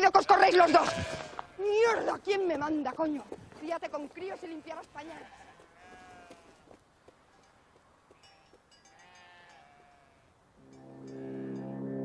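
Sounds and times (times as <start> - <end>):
faint animal bleat: 0.0 - 2.0, 5.0 - 6.6, 9.0 - 10.4
sustained synthesizer chord: 10.6 - 12.0.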